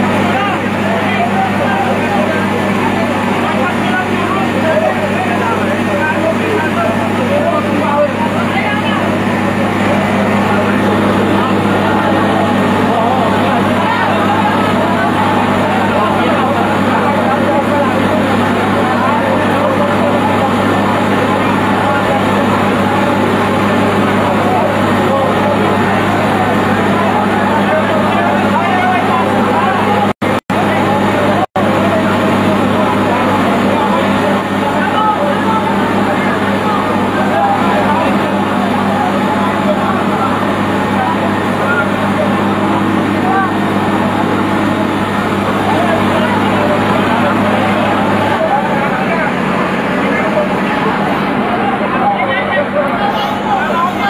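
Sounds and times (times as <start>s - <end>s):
fire truck engine humming: 0.0s - 54.0s
people talking: 0.0s - 54.0s.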